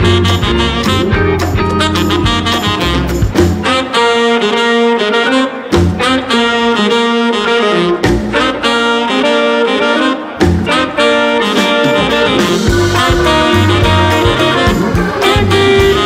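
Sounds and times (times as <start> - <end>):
funk jazz band playing: 0.0 - 16.0
saxophone long held notes: 0.0 - 16.0.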